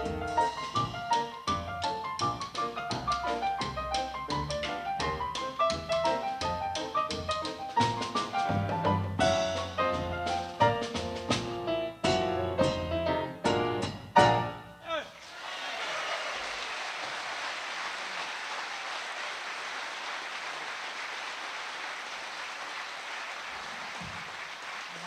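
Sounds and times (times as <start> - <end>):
jazz trio playing: 0.0 - 14.6
audience applause: 15.2 - 25.0.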